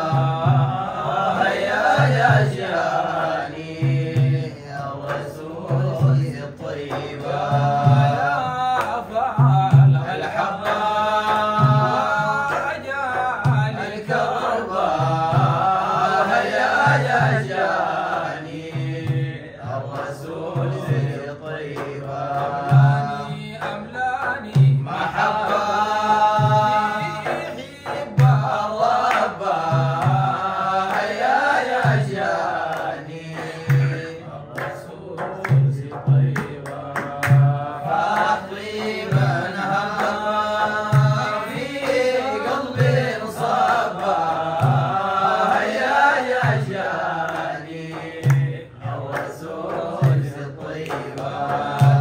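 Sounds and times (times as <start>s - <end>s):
hand clapping: 0.0s - 52.0s
hand frame drums: 0.0s - 52.0s
male group chanting: 0.0s - 52.0s
men singing together: 0.0s - 52.0s.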